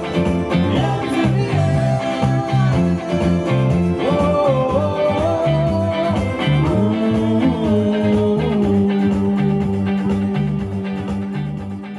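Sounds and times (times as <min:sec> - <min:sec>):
electric guitar: 0:00.0 - 0:11.9
keyboard: 0:00.0 - 0:11.9
steady drum beat: 0:00.0 - 0:11.9
stepping bass line: 0:00.0 - 0:11.9.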